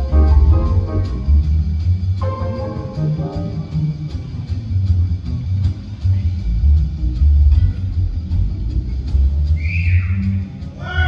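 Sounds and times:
jazz combo playing: 0.0 - 5.7
upright bass line: 0.0 - 10.5.

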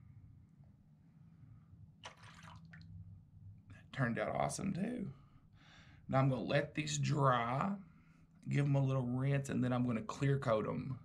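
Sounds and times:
low steady hum: 0.0 - 11.0
water splash: 2.0 - 2.8
water dripping: 2.0 - 3.0.

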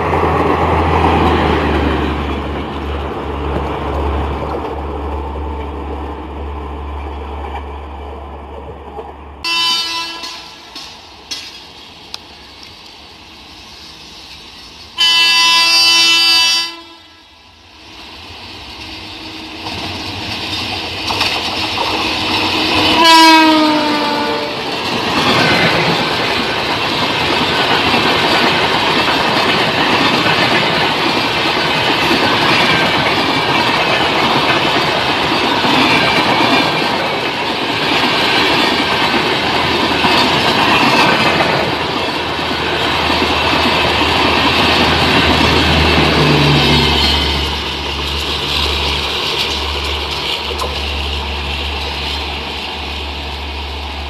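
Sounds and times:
train wheels clattering on rails: 0.0 - 15.9, 18.1 - 54.0
locomotive horn blast: 9.4 - 10.8, 15.0 - 17.3, 22.5 - 24.7.

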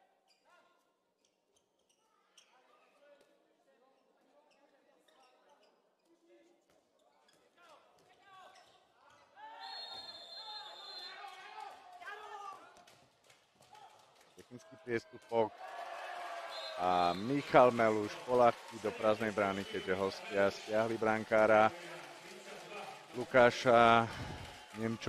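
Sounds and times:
players calling out: 15.1 - 25.0.

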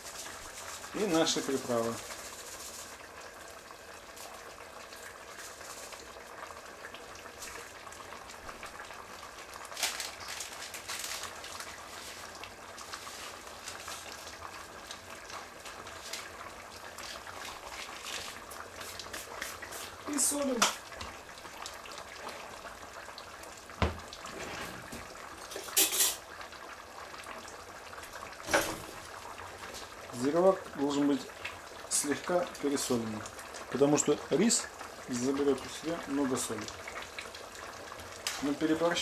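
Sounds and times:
stew boiling with popping: 0.0 - 39.0.

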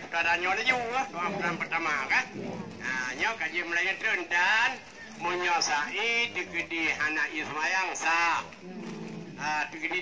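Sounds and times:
man speaking through loudspeaker: 0.0 - 8.6, 9.4 - 10.0.

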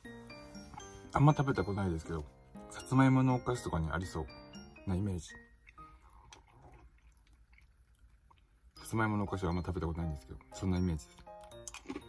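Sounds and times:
crunching dried chips: 5.7 - 8.6, 11.1 - 12.0.

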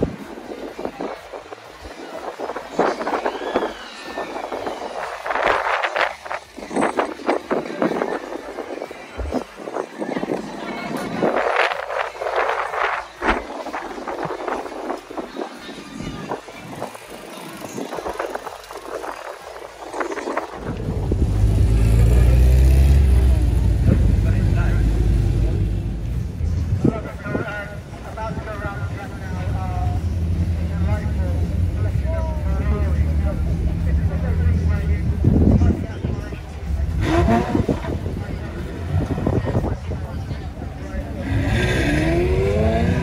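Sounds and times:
crowd chatter: 0.0 - 43.0
car engine running loud: 17.6 - 27.1, 29.0 - 43.0.

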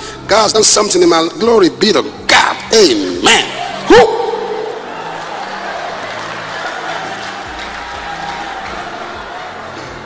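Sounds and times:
congregation applauding and cheering: 3.5 - 10.0.

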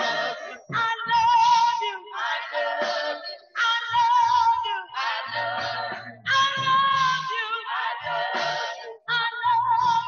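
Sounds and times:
women singing gospel amplified: 0.0 - 10.0.

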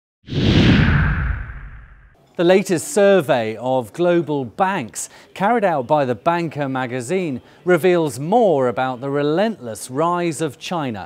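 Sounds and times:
whoosh with deep rumble: 0.3 - 2.2.

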